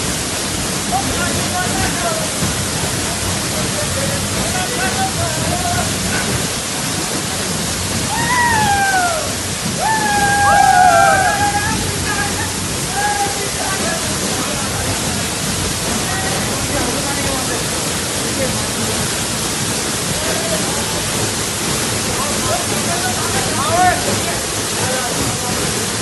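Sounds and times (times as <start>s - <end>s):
people splashing in water: 0.0s - 26.0s
waterfall rushing: 0.0s - 26.0s
voices shouting: 8.1s - 13.4s.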